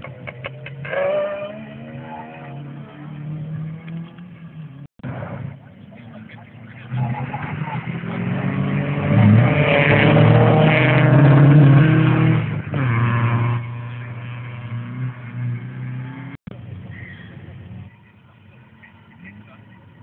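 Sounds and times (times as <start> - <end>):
rally car engine at high revs: 0.0 - 17.1.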